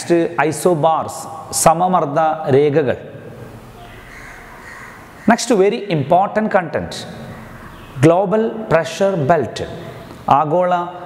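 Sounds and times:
low room noise: 0:00.0 - 0:11.0
faint bird calling: 0:03.7 - 0:05.5, 0:07.1 - 0:08.0.

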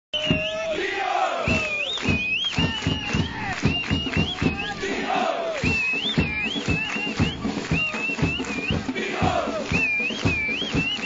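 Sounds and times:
quick even drumbeats: 0:00.2 - 0:11.0
crowd chanting in unison: 0:00.3 - 0:01.9, 0:04.3 - 0:05.8, 0:08.5 - 0:10.0.

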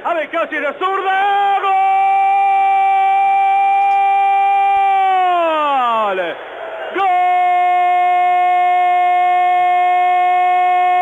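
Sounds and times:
commentator shouting goal: 0:00.0 - 0:11.0.

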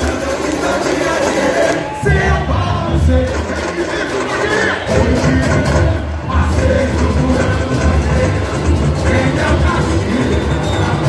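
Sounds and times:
people singing samba: 0:00.0 - 0:11.0
samba drumming: 0:00.0 - 0:11.0.

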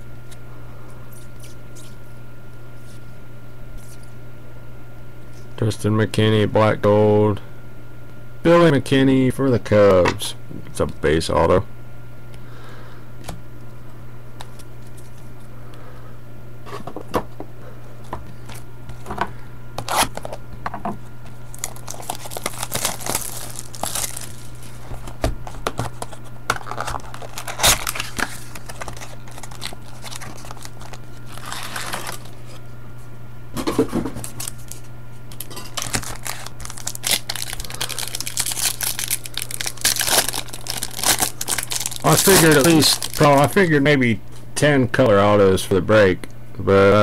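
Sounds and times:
low electrical hum: 0:00.0 - 0:47.0
cardboard tearing: 0:19.8 - 0:20.4, 0:21.5 - 0:32.6, 0:35.7 - 0:43.5
foil wrappers crinkling: 0:21.3 - 0:32.6, 0:34.1 - 0:44.4.

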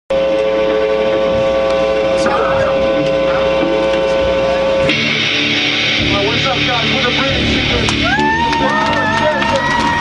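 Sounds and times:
electric guitar droning tone: 0:00.1 - 0:10.0.

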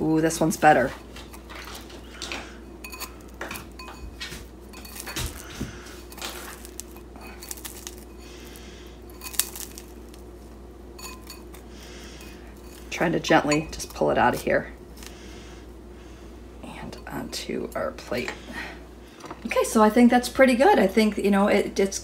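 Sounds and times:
metal fork scraping ceramic bowl: 0:02.8 - 0:03.2, 0:11.0 - 0:11.6.

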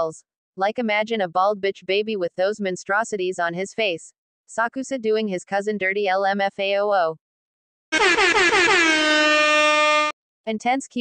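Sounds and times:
buzzy horn sound effect: 0:07.9 - 0:10.2.

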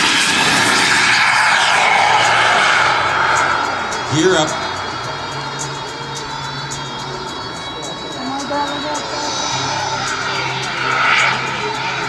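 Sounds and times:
model jet flying: 0:00.0 - 0:06.4, 0:08.8 - 0:12.0
music over loudspeakers: 0:02.2 - 0:12.0.

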